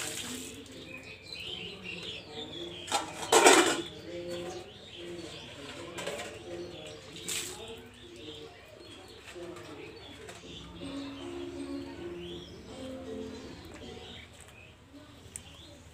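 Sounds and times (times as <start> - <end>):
steel dishes clattering: 2.9 - 3.9.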